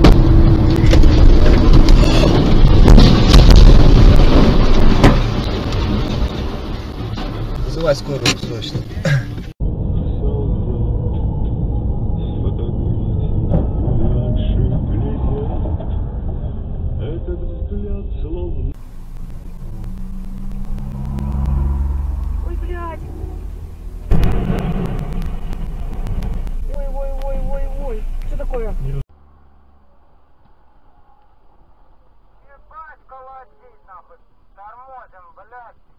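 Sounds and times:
loud crash of truck overturning: 0.0s - 9.0s
vehicle cabin rumble: 0.0s - 29.2s
engine running steadily: 18.8s - 29.0s.

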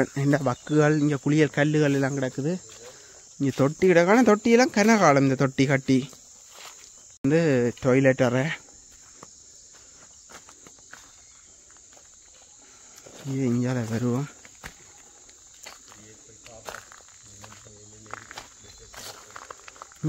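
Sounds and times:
man speaking: 0.0s - 6.2s, 7.2s - 8.6s, 13.2s - 14.4s, 15.9s - 19.6s
insects droning: 0.0s - 20.0s
footsteps on brick rubble: 8.9s - 20.0s.

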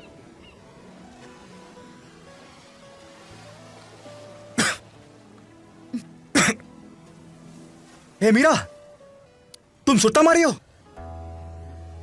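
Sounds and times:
soft film score: 0.0s - 12.0s
person coughing: 4.6s - 4.8s, 6.3s - 6.6s.

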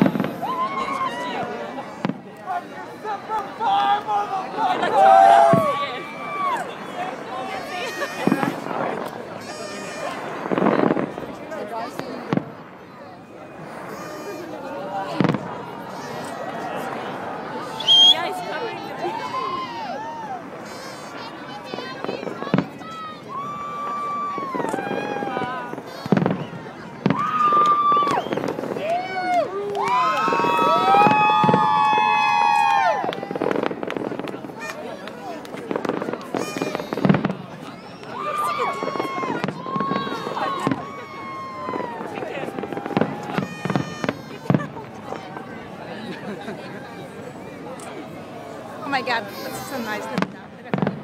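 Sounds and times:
people whooping: 0.0s - 1.5s, 3.6s - 8.6s, 16.0s - 20.6s, 23.1s - 26.4s, 27.0s - 33.7s, 36.4s - 45.3s
fireworks bangs and crackles: 0.0s - 51.0s.

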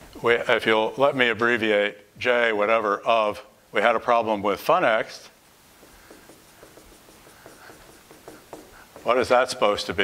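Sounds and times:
marker writing on whiteboard: 5.7s - 10.0s.

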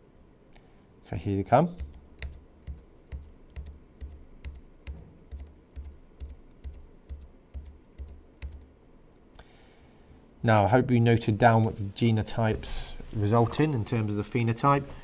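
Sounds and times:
computer key clicks: 1.8s - 8.7s.

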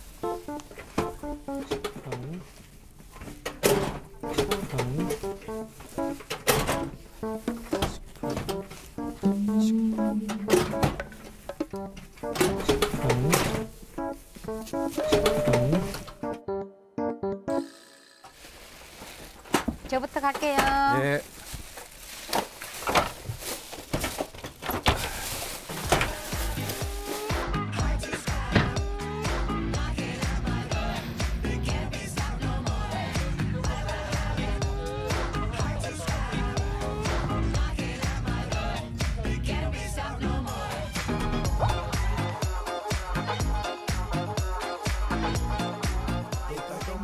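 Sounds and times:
background music: 0.0s - 18.4s, 25.3s - 47.0s
train seats clacking: 0.2s - 16.4s, 19.3s - 21.1s, 22.3s - 27.4s
plucked-string background music: 3.6s - 18.1s.

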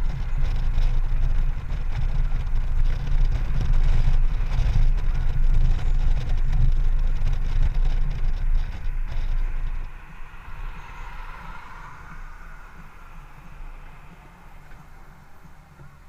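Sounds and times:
motorcycle engine running: 0.0s - 16.0s
wind rushing over microphone: 0.0s - 16.0s.

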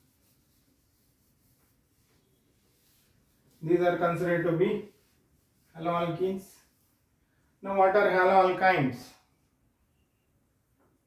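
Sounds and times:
hand wiping whiteboard: 0.0s - 8.6s.

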